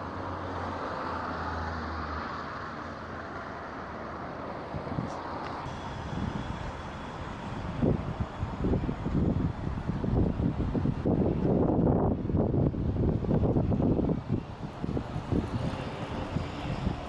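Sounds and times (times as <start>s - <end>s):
city street traffic: 0.0s - 17.0s
gusty rumble on microphone: 4.7s - 17.0s.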